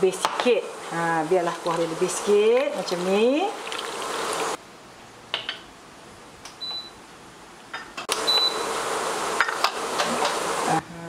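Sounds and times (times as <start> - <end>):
gravy hissing as it cooks: 0.5 - 4.6.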